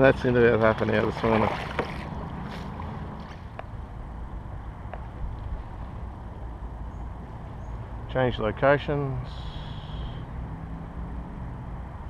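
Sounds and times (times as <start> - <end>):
wind rumble on microphone: 0.0 - 8.1.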